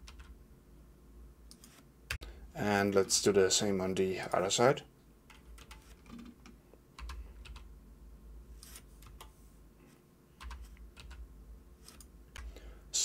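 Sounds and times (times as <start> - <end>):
low steady hum: 0.0 - 13.0
computer keyboard tapping: 5.3 - 7.7, 8.6 - 9.4, 10.4 - 11.2.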